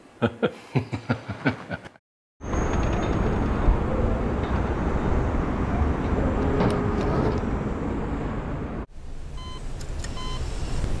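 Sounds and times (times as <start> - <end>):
distant traffic rumble: 2.4 - 11.0.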